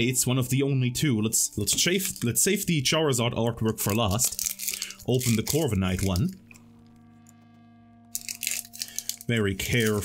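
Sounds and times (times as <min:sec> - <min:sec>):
foil wrapper crinkling and tearing: 0:01.8 - 0:02.4, 0:03.7 - 0:06.4, 0:08.1 - 0:10.0
faint steady hum: 0:04.4 - 0:10.0.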